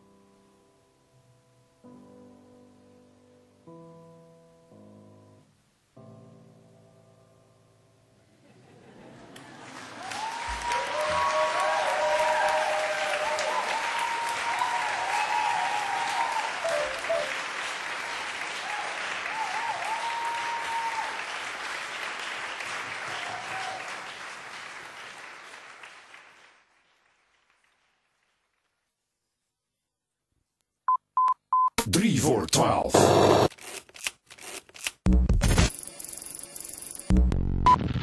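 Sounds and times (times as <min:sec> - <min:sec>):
audience applauding and cheering: 0:09.2 - 0:28.6.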